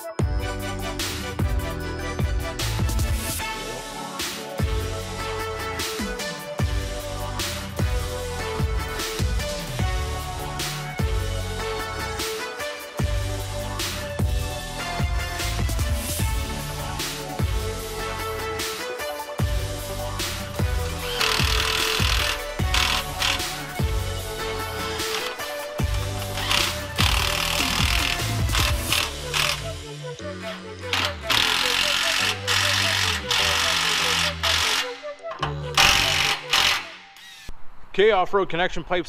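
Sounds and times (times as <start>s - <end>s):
instrumental music with beat and bass: 0.0s - 34.4s.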